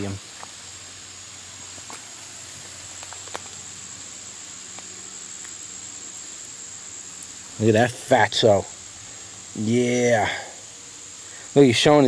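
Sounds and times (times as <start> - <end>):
plant leaves rustling: 0.0 - 10.3
soft hiss: 0.0 - 12.0.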